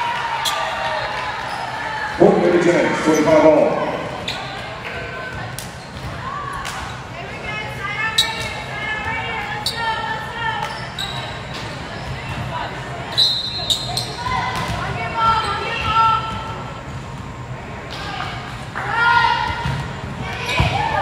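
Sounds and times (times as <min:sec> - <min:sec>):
people calling out in gym: 0:02.9 - 0:16.9, 0:17.8 - 0:21.0.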